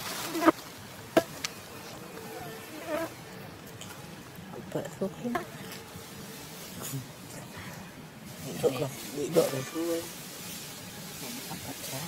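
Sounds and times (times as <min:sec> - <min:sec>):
dry leaves crackling: 0:00.0 - 0:02.2, 0:08.2 - 0:12.0
insect buzzing: 0:00.0 - 0:03.5.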